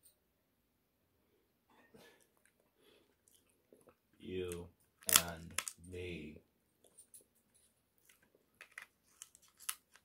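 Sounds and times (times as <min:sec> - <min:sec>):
shellfish shells cracking: 0:04.5 - 0:05.8, 0:08.1 - 0:10.0.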